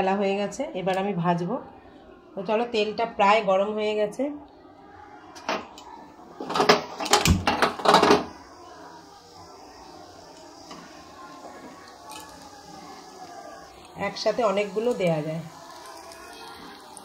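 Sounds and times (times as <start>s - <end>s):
spring rolls frying in oil: 5.0s - 17.0s
loud crackling and knocks: 6.4s - 8.4s.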